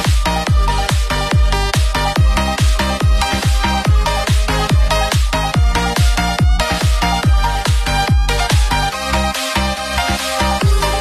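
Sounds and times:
heavy kick drum: 0.0 - 8.9, 10.6 - 11.0
electronic dance music: 0.0 - 11.0.

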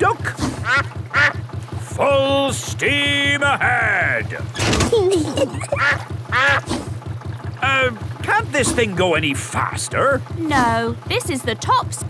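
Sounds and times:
boat motor chugging: 0.0 - 12.0
cartoon duck quacking: 0.6 - 1.4, 5.6 - 6.7.

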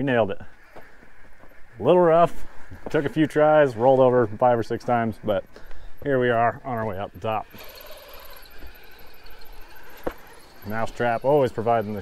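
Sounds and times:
rc truck motor whine: 6.6 - 12.0.

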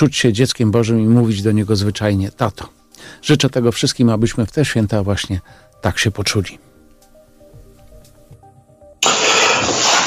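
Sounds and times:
quiet background music: 0.0 - 10.0
deep breath into microphone: 3.0 - 3.2, 5.4 - 5.8.

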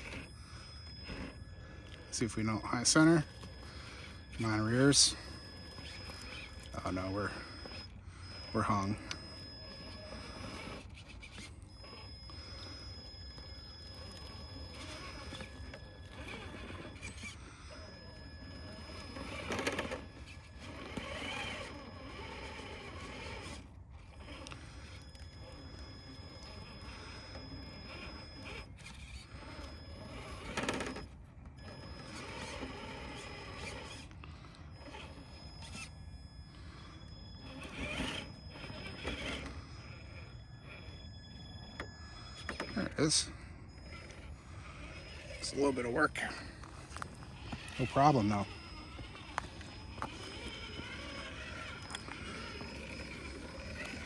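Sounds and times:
rc truck motor running: 0.0 - 54.0.

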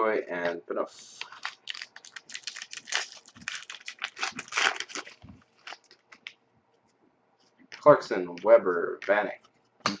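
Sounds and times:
foil wrapper crinkling and tearing: 1.2 - 6.3.

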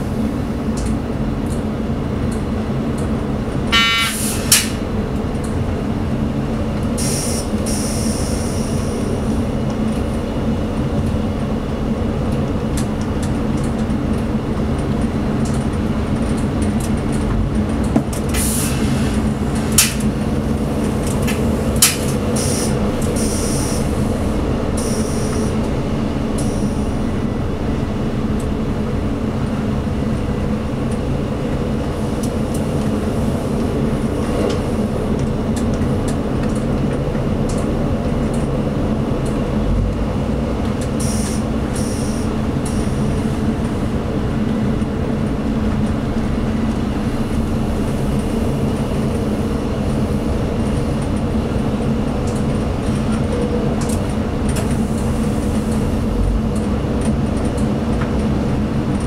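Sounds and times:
diesel railcar engine hum: 0.0 - 59.0.

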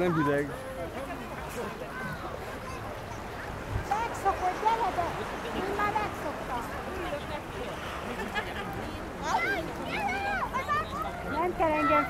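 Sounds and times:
people shouting: 9.3 - 12.0.

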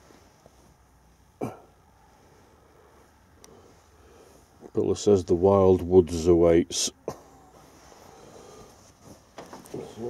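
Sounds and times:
faint handling noise: 0.0 - 1.3, 7.6 - 10.0.

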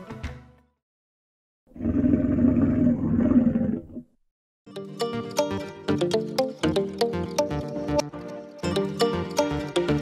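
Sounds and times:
lion roaring: 1.7 - 4.1.

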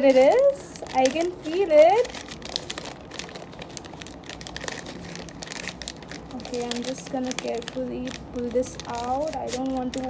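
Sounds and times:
wrapping paper crinkling: 0.0 - 10.0.

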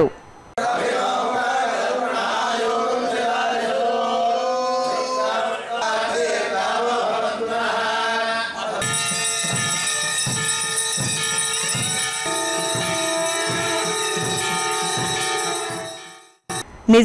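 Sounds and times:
men chanting: 0.6 - 9.0
conch shells blown: 8.8 - 16.6
steady rhythmic beat: 8.8 - 16.6.

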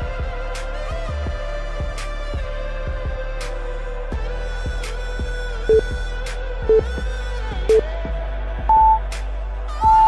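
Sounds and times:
upbeat background music: 0.0 - 10.0
electronic timer beeps: 8.7 - 9.0.

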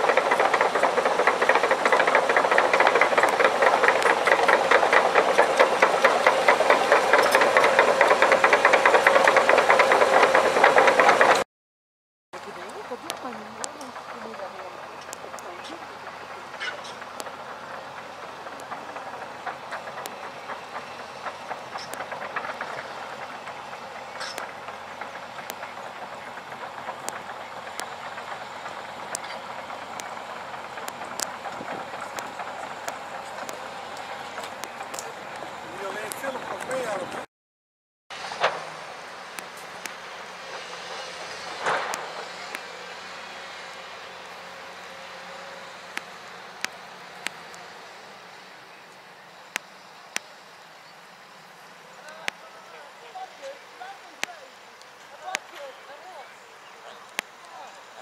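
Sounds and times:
excavator clanking: 0.0 - 11.4, 12.4 - 37.3, 38.2 - 49.7.

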